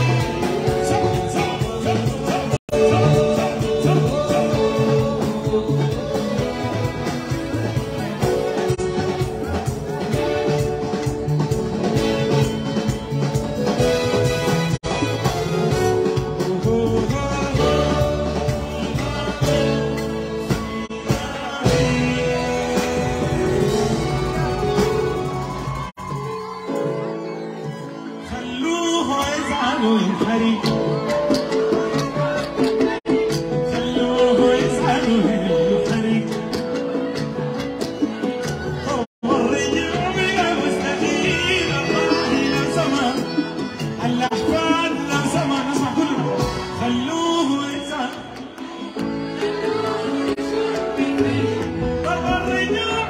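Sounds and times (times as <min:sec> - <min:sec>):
man singing: 0:00.0 - 0:14.3, 0:14.9 - 0:24.8, 0:28.2 - 0:37.2, 0:38.7 - 0:53.0
keyboard-led band: 0:00.0 - 0:53.0.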